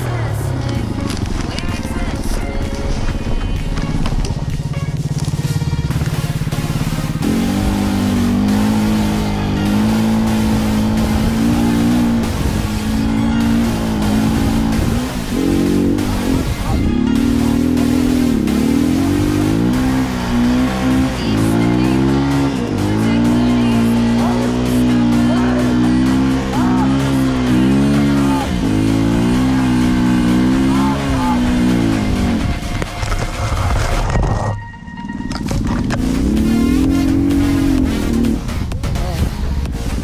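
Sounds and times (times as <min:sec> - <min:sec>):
dirt bike engine revving: 0:00.0 - 0:40.0.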